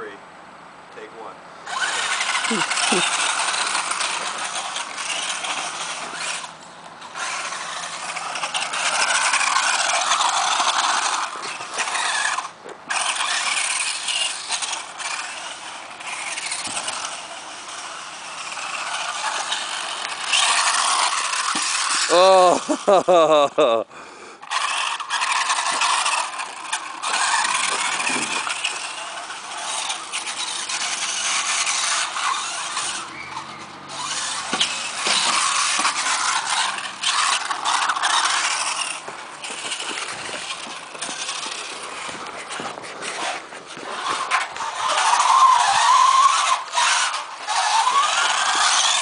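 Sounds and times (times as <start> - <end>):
tyres on dirt: 0.0 - 49.0
toy truck motor whining: 1.6 - 49.0.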